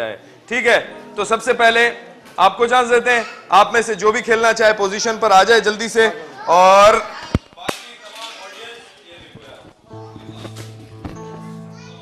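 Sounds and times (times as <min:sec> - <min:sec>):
faint chatter: 0:00.0 - 0:12.0.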